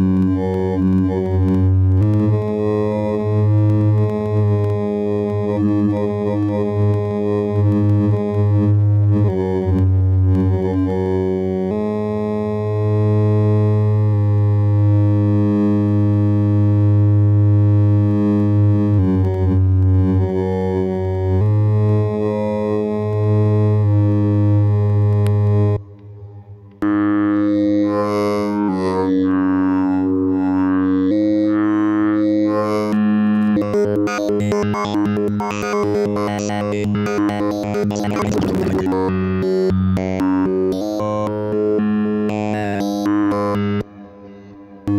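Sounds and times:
held synth notes: 0:00.0 - 0:44.9.

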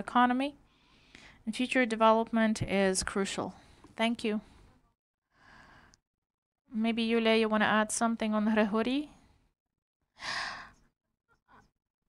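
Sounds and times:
breath into microphone: 0:00.7 - 0:01.4, 0:05.4 - 0:06.0.

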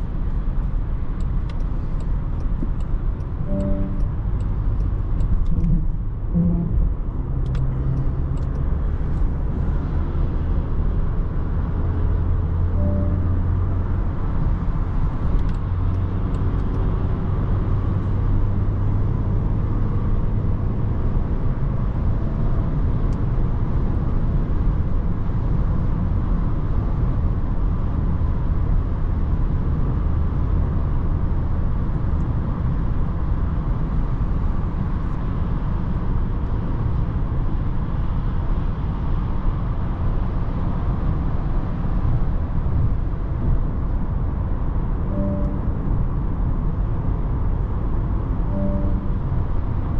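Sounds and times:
low engine hum: 0:00.0 - 0:49.9
road and tyre rumble in car cabin: 0:00.0 - 0:49.9.

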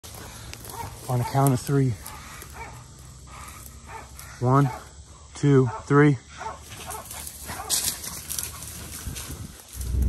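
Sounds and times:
low animal noises: 0:00.1 - 0:10.0
rustling in brush: 0:06.7 - 0:10.0.

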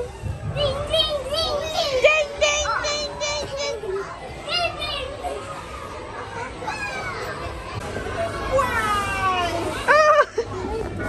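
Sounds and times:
children's high-pitched voices: 0:00.0 - 0:09.9.

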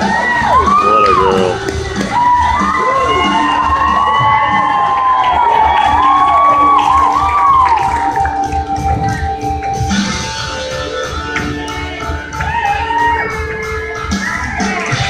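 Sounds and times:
children shouting and whooping: 0:00.0 - 0:08.4, 0:12.4 - 0:15.0
audience cheering: 0:00.0 - 0:15.0
music with steady beat: 0:00.0 - 0:15.0.

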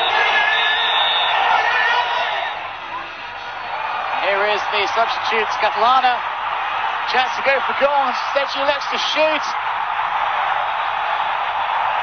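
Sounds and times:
long whistle-like tones: 0:00.0 - 0:01.4
stadium crowd cheering and yelling: 0:00.0 - 0:12.0.

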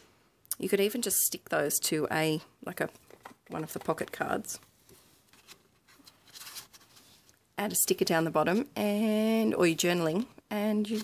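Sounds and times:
soft scratchy rustles: 0:03.8 - 0:08.8.

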